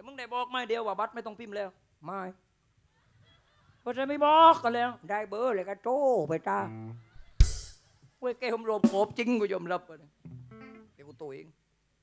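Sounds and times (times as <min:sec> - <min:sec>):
man speaking in puppet voice: 0:00.0 - 0:02.4, 0:03.9 - 0:06.8, 0:08.2 - 0:10.2, 0:11.0 - 0:11.6.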